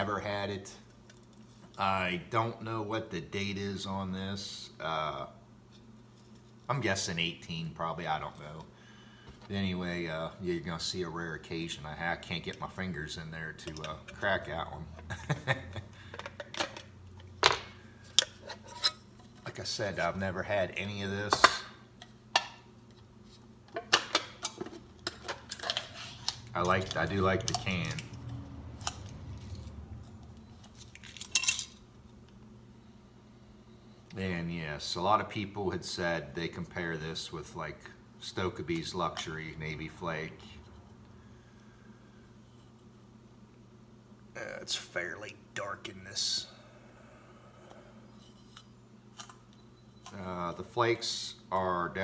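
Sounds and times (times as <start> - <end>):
low steady room hum: 0.0 - 52.0
tobacco flakes ticking and crackling: 26.2 - 32.4.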